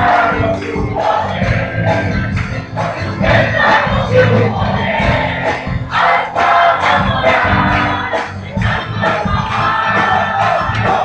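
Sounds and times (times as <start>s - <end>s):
congregation singing and calling out: 0.0s - 11.0s
up-tempo worship music: 0.0s - 11.0s.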